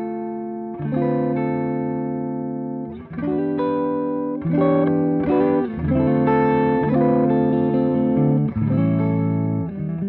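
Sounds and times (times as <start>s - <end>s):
clean electric guitar chords: 0.0s - 10.0s.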